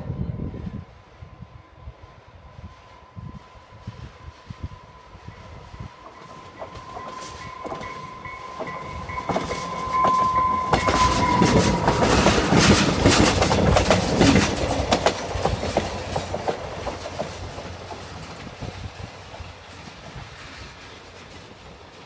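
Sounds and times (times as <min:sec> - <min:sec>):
diesel train passing: 0:00.0 - 0:22.0
steady high tone: 0:04.6 - 0:13.3
wheels clicking over rail joints: 0:06.0 - 0:22.0.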